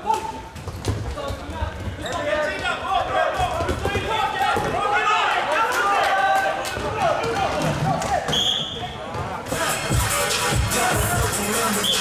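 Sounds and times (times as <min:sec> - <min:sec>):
players shouting: 0:02.2 - 0:12.0
referee's whistle blast: 0:08.3 - 0:08.8, 0:11.8 - 0:12.0.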